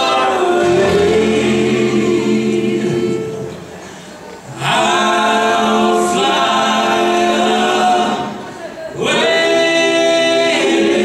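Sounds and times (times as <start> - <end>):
group singing in harmony: 0.0 - 11.0.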